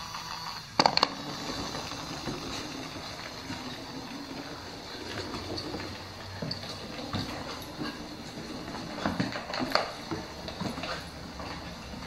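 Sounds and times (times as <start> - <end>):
toy motor whirring: 0.0 - 4.4.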